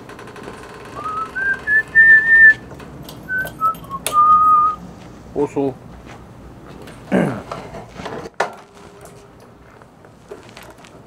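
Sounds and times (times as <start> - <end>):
person whistling a tune: 1.0 - 2.6, 3.3 - 4.8.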